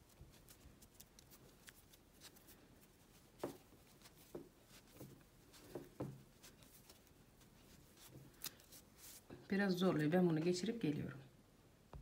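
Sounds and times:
faint rustling: 0:00.0 - 0:09.6.

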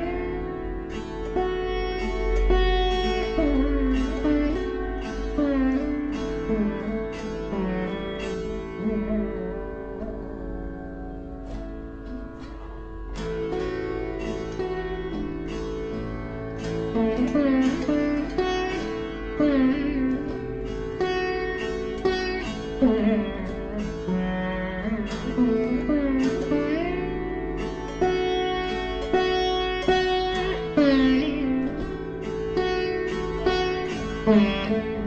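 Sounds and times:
plucked bass sitar notes: 0:00.0 - 0:35.0.

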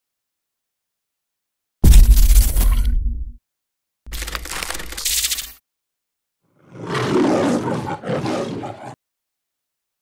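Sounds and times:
lion roar: 0:06.6 - 0:09.0.

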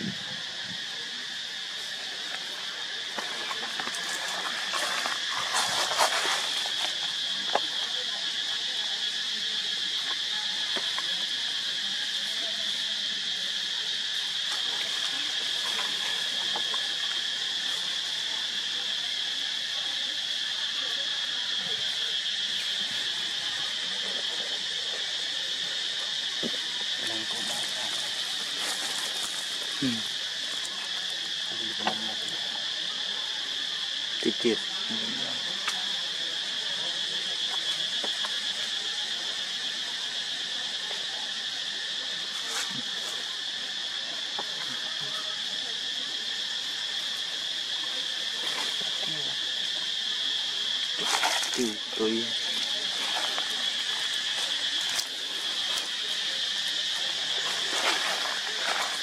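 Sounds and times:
insects droning: 0:00.0 - 0:59.0.

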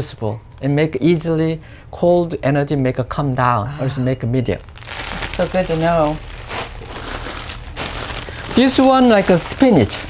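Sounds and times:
vegetables crinkling and rustling: 0:04.6 - 0:10.0.

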